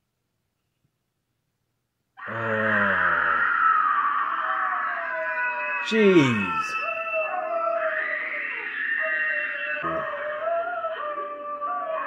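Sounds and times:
eerie wailing horror score: 2.2 - 12.0.

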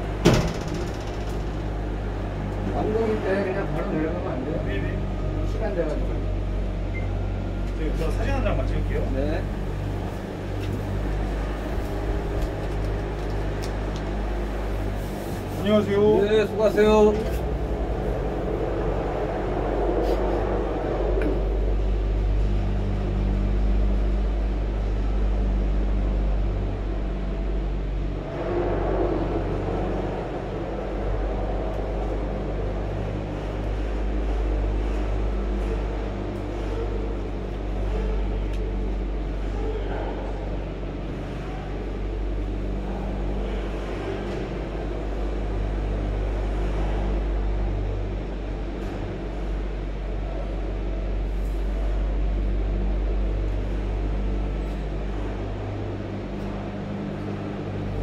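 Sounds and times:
cable car machinery drone: 0.0 - 58.0.

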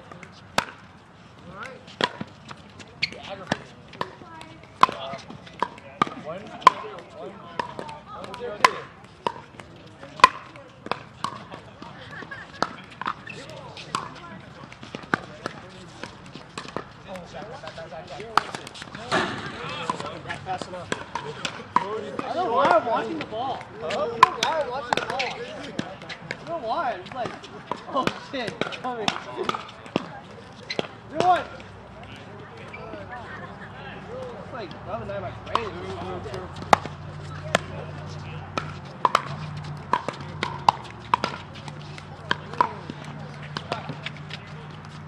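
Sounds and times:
players' voices chattering: 0.0 - 45.0
paddles hitting plastic ball: 7.6 - 11.9, 13.8 - 26.5, 35.5 - 45.0.

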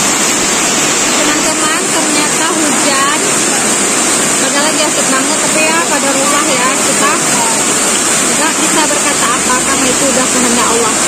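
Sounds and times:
heavy rain on a metal roof: 0.0 - 11.0
voices talking: 1.1 - 11.0.

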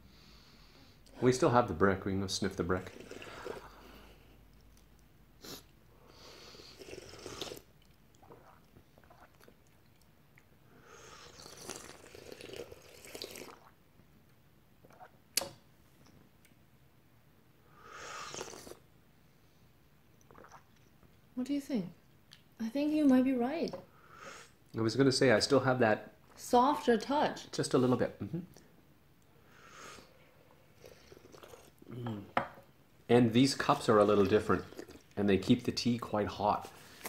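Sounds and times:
tea slurping: 2.8 - 4.1, 6.4 - 10.1, 11.0 - 13.8, 18.1 - 18.8, 20.2 - 21.0, 30.6 - 31.9, 33.6 - 35.6.

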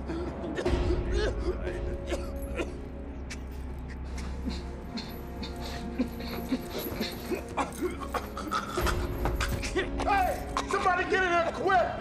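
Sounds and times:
tense orchestral score: 0.0 - 12.0
man choking and whimpering: 0.1 - 9.8.

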